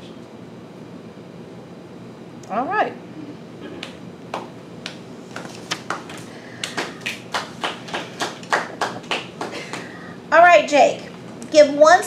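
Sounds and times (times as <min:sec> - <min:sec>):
sparse applause: 0:06.6 - 0:10.0.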